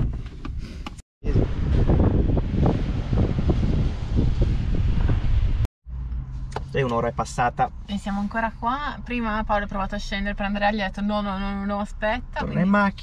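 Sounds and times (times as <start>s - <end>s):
wind buffeting microphone: 1.2s - 5.7s.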